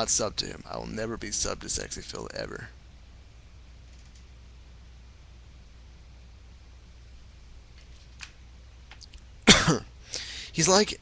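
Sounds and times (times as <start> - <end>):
faint room hiss: 0.0 - 11.0
man coughing: 9.4 - 10.3.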